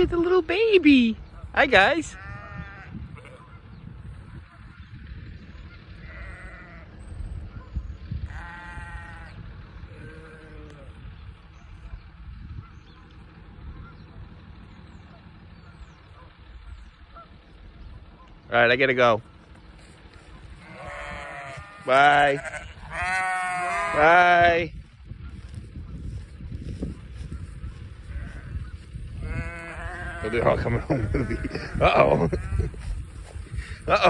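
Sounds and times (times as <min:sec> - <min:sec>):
steady low rumble: 0:00.0 - 0:34.0
sheep bleating: 0:02.0 - 0:03.6, 0:06.0 - 0:07.0, 0:08.2 - 0:11.0, 0:20.6 - 0:24.4, 0:28.0 - 0:33.0.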